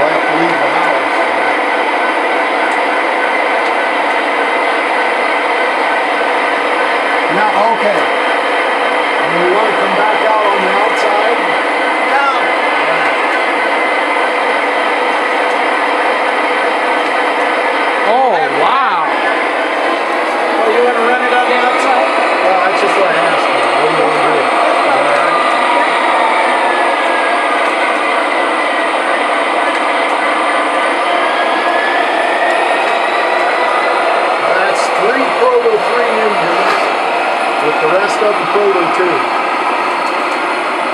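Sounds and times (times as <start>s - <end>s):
model locomotives running drone: 0.0s - 40.9s
murmur of voices: 9.2s - 13.7s, 18.0s - 29.4s, 31.2s - 39.5s.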